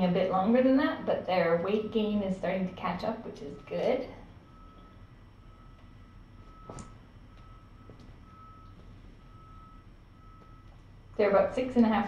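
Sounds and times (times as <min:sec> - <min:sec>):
faint electronic beeping: 0:00.0 - 0:12.0.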